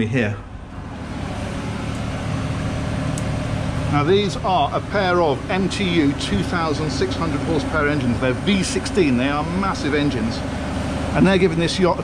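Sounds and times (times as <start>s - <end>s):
engine room machinery drone: 0.0s - 12.0s.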